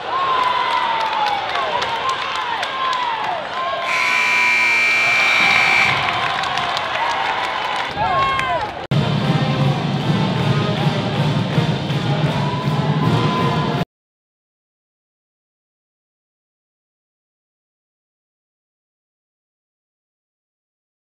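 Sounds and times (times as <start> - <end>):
crowd noise: 0.0 - 11.3
scoreboard horn: 3.9 - 6.3.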